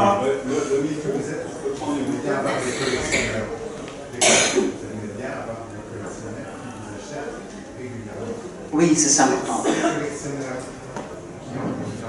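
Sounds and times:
faint talk: 0.0s - 12.0s
person coughing: 4.2s - 4.8s, 9.5s - 10.1s.

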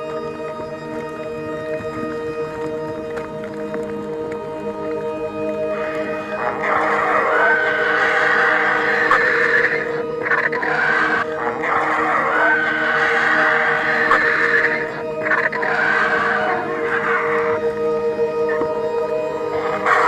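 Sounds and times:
background music with held tones: 0.0s - 20.0s
vultures calling: 5.6s - 20.0s.

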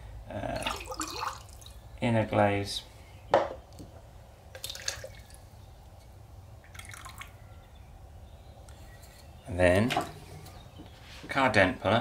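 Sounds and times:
faint dripping and trickling: 0.4s - 2.0s, 4.5s - 7.5s
liquid pouring into container: 0.5s - 1.8s, 6.6s - 7.4s
liquid glaze sloshing in ceramic cup: 0.6s - 1.8s.

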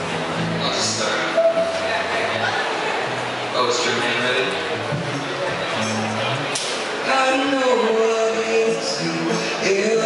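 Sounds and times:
guitar: 0.0s - 10.0s
bass notes: 4.5s - 7.3s
drums: 4.8s - 7.0s.

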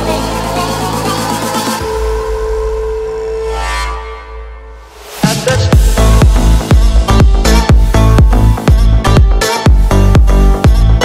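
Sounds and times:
deep bass drone: 0.0s - 11.0s.

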